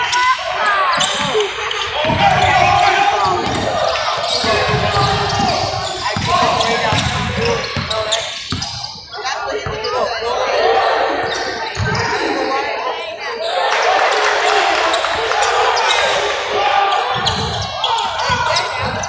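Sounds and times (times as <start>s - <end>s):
echoing voices and shouts: 0.0s - 19.0s
basketball bouncing on hardwood: 2.0s - 2.6s.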